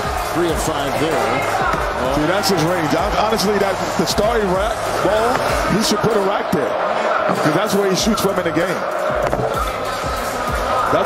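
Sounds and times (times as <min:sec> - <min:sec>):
background music: 0:00.0 - 0:11.0
crowd noise: 0:00.0 - 0:11.0.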